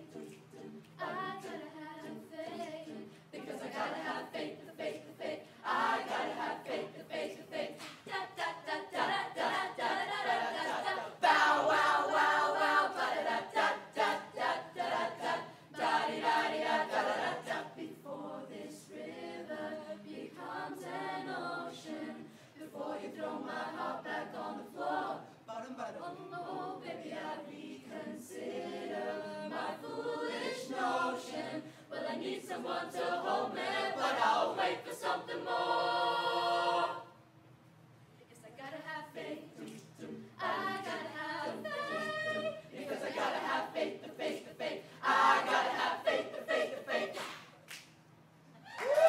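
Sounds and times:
choir singing a cappella: 0.0s - 37.4s, 38.5s - 47.6s.

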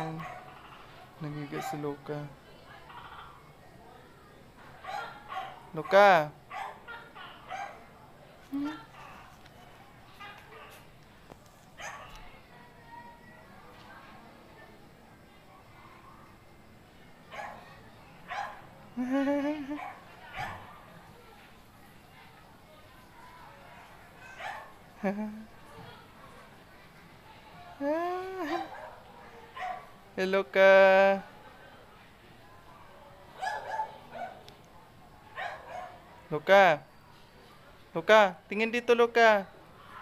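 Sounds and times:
dog barking: 0.0s - 0.9s, 1.6s - 1.9s, 4.8s - 7.9s, 11.8s - 12.2s, 17.3s - 17.7s, 18.3s - 18.7s, 19.8s - 20.8s, 24.2s - 24.8s, 28.5s - 30.0s, 33.4s - 34.5s, 35.3s - 36.1s
dog barking faintly: 0.0s - 3.4s, 4.8s - 8.0s, 8.6s - 10.9s, 11.7s - 14.2s, 17.2s - 18.7s, 19.7s - 22.5s, 23.2s - 24.8s, 33.3s - 34.5s, 35.2s - 36.2s.

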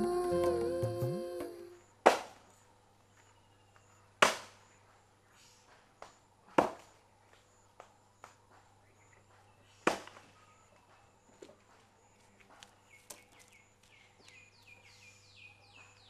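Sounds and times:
soft background music: 0.0s - 1.8s
hand tool chopping strikes: 2.0s - 2.4s, 4.2s - 4.6s.

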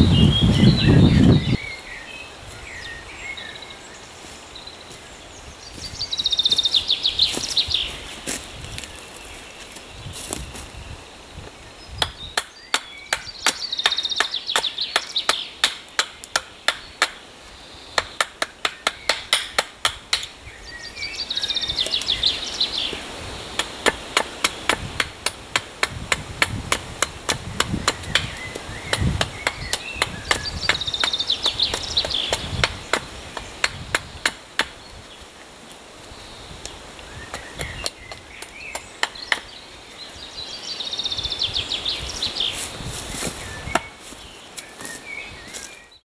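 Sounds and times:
bird singing: 0.0s - 25.4s, 27.1s - 35.4s, 36.1s - 42.7s, 43.3s - 46.0s.

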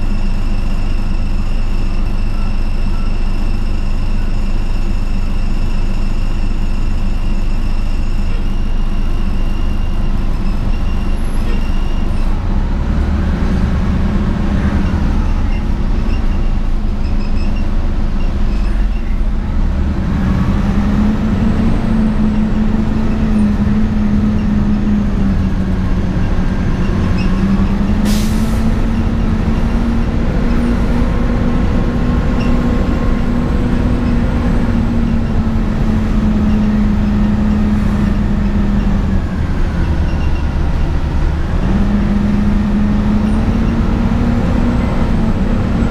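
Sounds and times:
bus drivetrain hum: 0.0s - 45.9s
road noise: 0.0s - 45.9s.

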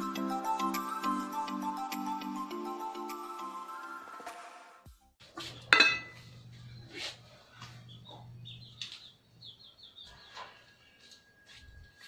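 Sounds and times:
small bird chirping: 7.8s - 11.2s.

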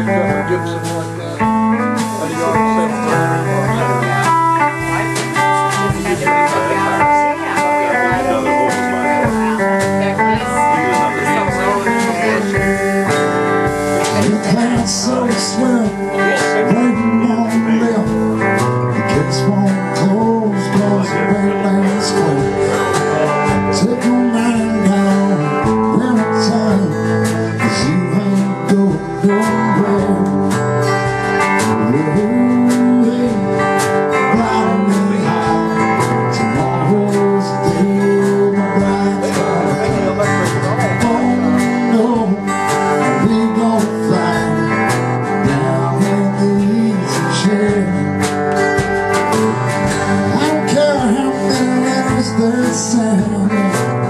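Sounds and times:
electric guitar playing: 0.0s - 54.0s
strummed acoustic guitar: 0.0s - 54.0s.

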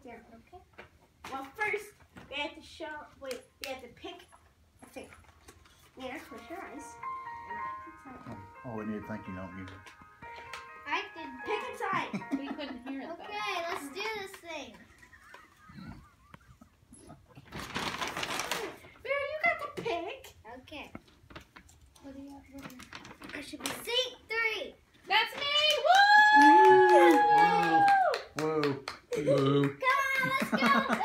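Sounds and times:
girls talking and exclaiming: 10.8s - 15.0s, 19.0s - 21.0s, 23.3s - 28.2s, 29.2s - 31.0s
rustling noise: 17.4s - 19.0s.

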